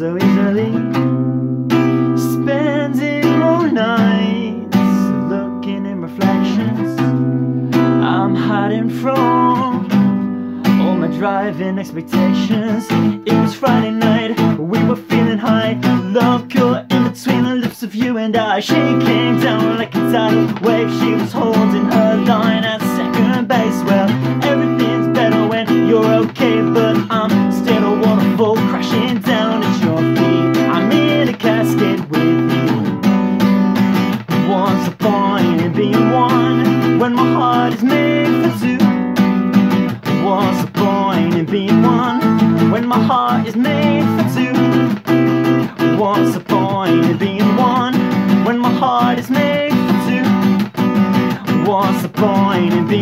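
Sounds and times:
acoustic guitar strumming: 0.0s - 53.0s
man singing: 0.0s - 53.0s.

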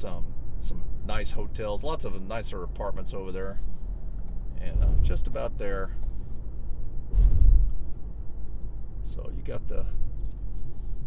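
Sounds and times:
car road noise rumble: 0.0s - 11.0s
low thump: 7.1s - 7.8s.

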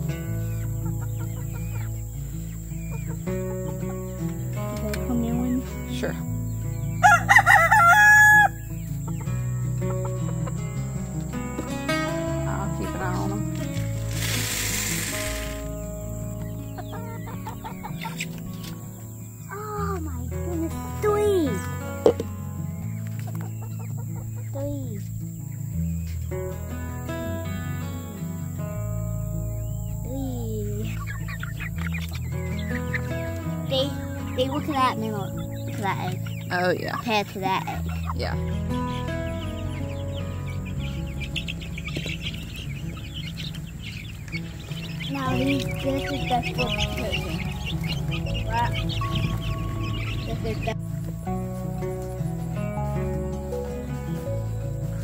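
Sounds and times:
background music: 0.0s - 55.0s
chickens calling: 0.0s - 55.0s
hens clucking: 0.0s - 55.0s
rooster crowing: 7.0s - 8.7s
feed pellets pouring into feeder: 14.0s - 15.7s.

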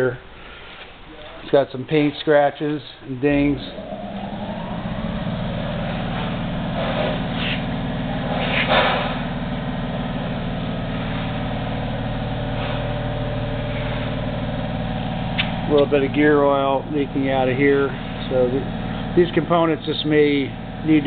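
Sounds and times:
lathe motor humming: 3.3s - 21.0s.

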